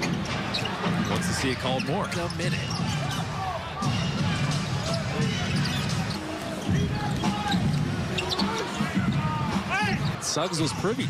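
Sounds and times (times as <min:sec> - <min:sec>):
arena crowd hubbub: 0:00.0 - 0:11.0.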